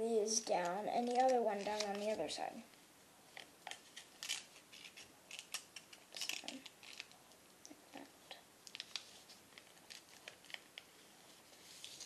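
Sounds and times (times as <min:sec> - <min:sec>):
paper folding crackles and rustles: 0:00.5 - 0:02.4, 0:03.4 - 0:07.2, 0:08.7 - 0:12.0.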